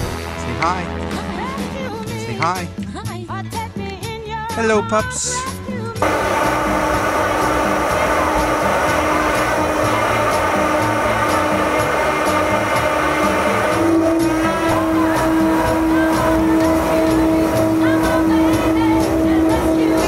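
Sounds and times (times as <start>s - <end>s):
soul song with steady beat: 0.0s - 20.0s
woman singing: 1.1s - 6.0s, 14.3s - 20.0s
turboprop engines droning: 6.0s - 20.0s.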